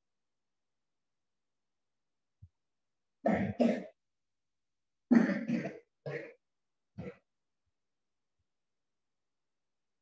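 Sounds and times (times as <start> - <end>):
person coughing: 3.3 - 4.0, 5.1 - 6.4.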